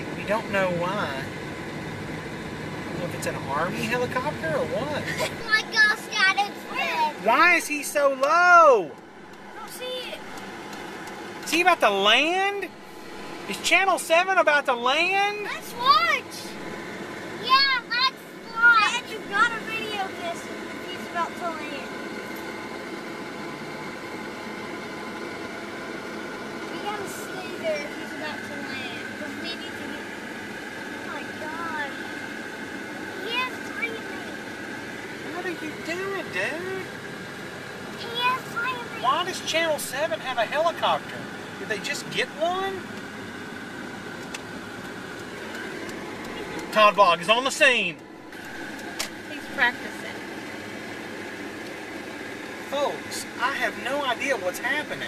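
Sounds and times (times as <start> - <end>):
engine humming: 0.0 - 55.0.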